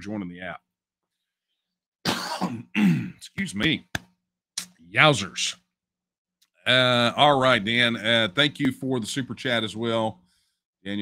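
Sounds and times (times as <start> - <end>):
man coughing: 2.0 - 3.2.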